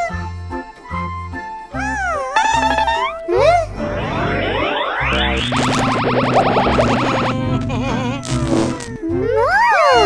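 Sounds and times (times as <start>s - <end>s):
background music: 0.0s - 10.0s
high rising and falling glides: 3.4s - 7.7s
falling whistle-like tone: 3.8s - 7.3s.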